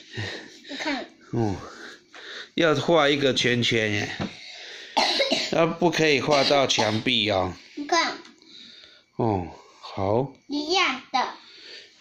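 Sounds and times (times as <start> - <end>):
person coughing: 5.0 - 5.6, 6.2 - 7.1.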